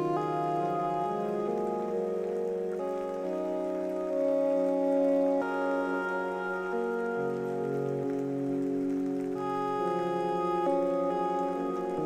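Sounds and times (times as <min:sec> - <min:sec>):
rain pattering: 0:00.0 - 0:12.0
soft music of held chords: 0:00.0 - 0:12.0.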